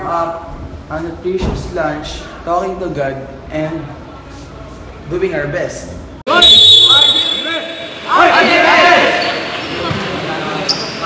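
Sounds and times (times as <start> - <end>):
team shouting a cheer: 6.3 - 9.6.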